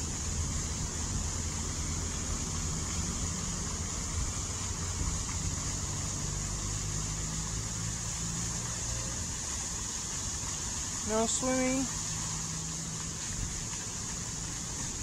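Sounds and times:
water wash: 0:00.0 - 0:15.0.

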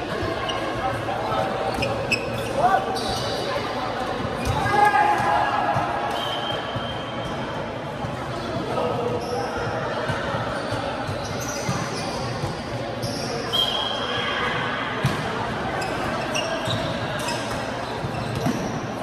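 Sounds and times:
shoe squeaking on court floor: 0:00.2 - 0:03.8, 0:06.0 - 0:07.6, 0:08.4 - 0:14.2, 0:15.0 - 0:19.0.

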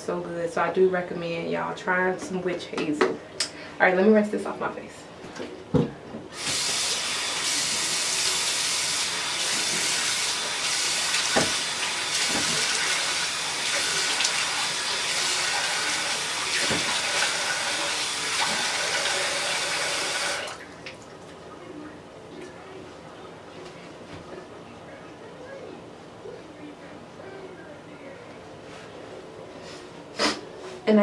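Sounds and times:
sink tap running: 0:06.3 - 0:21.0
face rinsed with water: 0:06.3 - 0:21.5.

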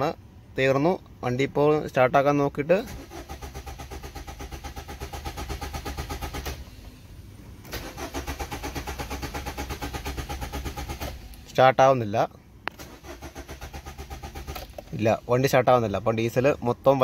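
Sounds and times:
diesel engine cranking: 0:02.7 - 0:11.6, 0:12.7 - 0:16.4.

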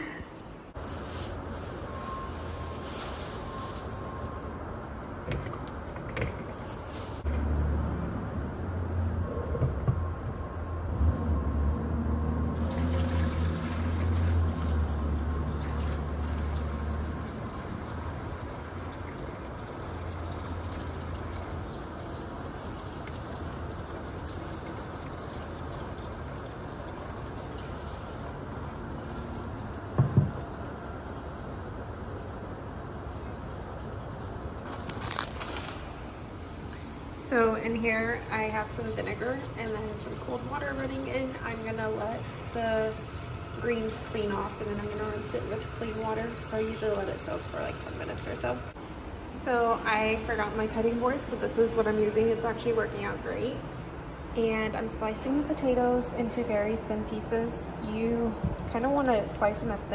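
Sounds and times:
faucet running into plastic bowl: 0:38.6 - 0:48.7.

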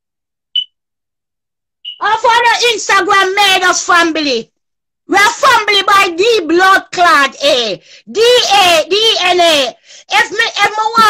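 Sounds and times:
short high-pitched beep: 0:01.8 - 0:02.0.

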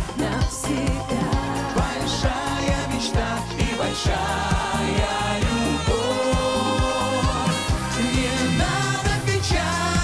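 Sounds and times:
live pop band playing: 0:00.0 - 0:10.0
man and woman singing: 0:00.0 - 0:10.0
steady drum beat: 0:00.0 - 0:10.0.

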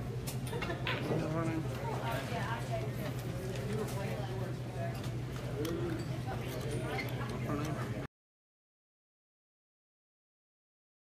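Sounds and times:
indistinct chatter: 0:00.5 - 0:08.1.

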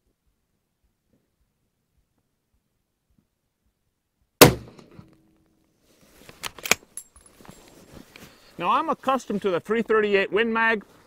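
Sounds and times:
rifle shot: 0:04.4 - 0:05.1
rifle bolt metallic clicks: 0:06.4 - 0:07.1.

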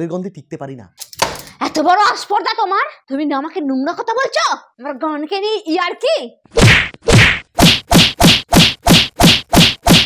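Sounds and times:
loud whacks with falling thuds: 0:06.6 - 0:10.0.

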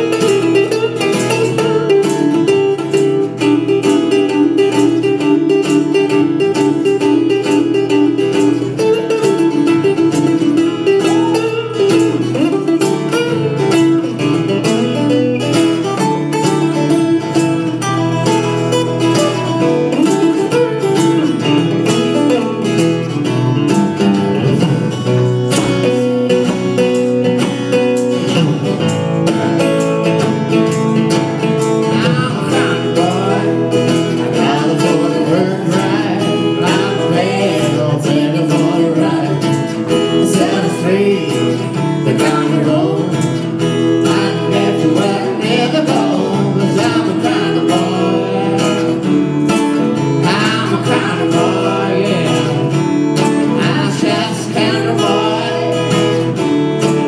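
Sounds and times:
acoustic guitars strumming: 0:00.0 - 0:57.0.

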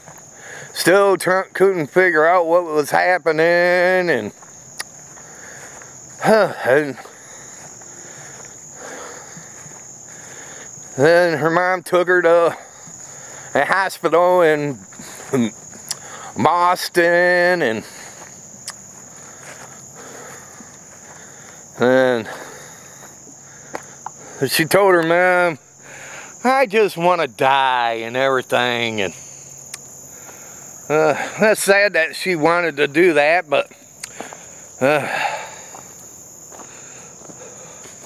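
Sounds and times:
high-pitched insect chorus: 0:00.0 - 0:38.0.

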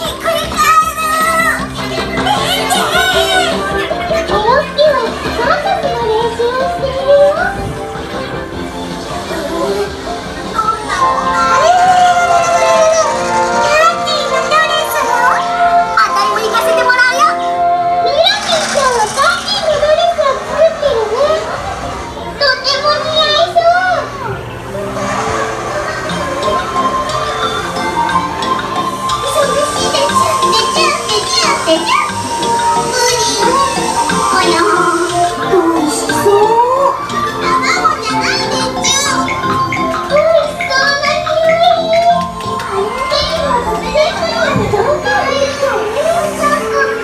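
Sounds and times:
faint music: 0:00.0 - 0:47.0
high-pitched child-like voice speaking: 0:11.9 - 0:21.5, 0:29.2 - 0:47.0.

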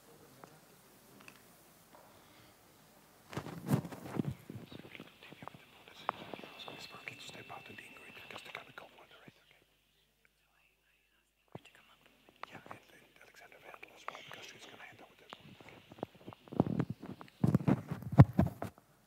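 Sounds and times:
murmured voices: 0:00.0 - 0:09.7, 0:11.5 - 0:16.5
clicks and rustles: 0:03.3 - 0:06.4, 0:15.2 - 0:18.8.

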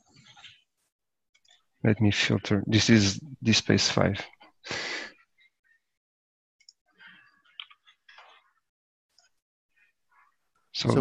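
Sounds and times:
man speaking: 0:01.8 - 0:04.3, 0:10.8 - 0:11.0
breath into microphone: 0:04.6 - 0:05.2.

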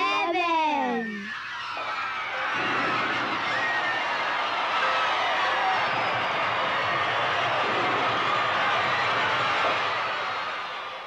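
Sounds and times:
crowd cheering and whooping: 0:01.0 - 0:11.0.

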